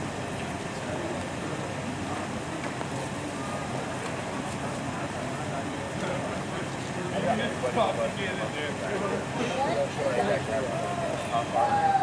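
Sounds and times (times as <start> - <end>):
faint indistinct voices: 0.0 - 12.0
low street rumble: 0.0 - 12.0.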